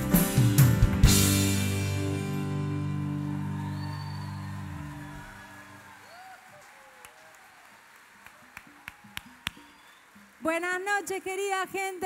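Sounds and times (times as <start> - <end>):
rock band held chord: 0.0 - 5.7.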